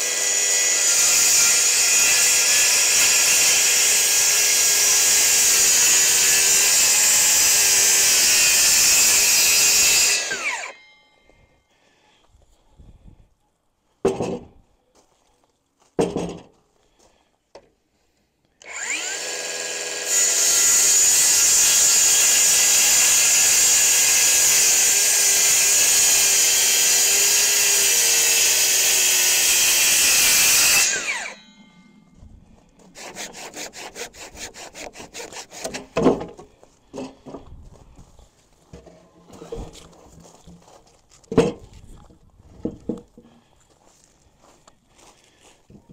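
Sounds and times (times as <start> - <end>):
circular saw cutting wood: 0.0 - 10.8, 18.6 - 32.0, 32.8 - 36.3
clattering and knocks: 14.0 - 14.6, 41.3 - 41.7.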